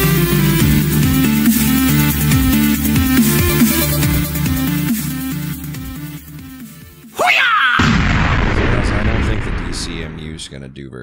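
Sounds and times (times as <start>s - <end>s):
rumbling explosion-like boom: 7.8s - 10.8s
man speaking: 8.8s - 11.0s.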